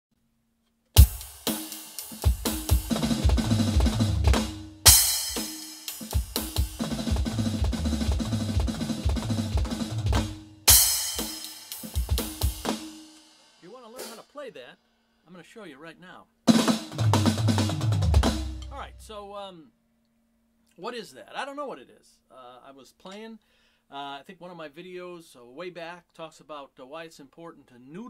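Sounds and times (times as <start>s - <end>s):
electronic drum fills: 1.0s - 14.3s, 16.5s - 19.2s
crash cymbal: 4.8s - 6.7s, 10.7s - 14.4s.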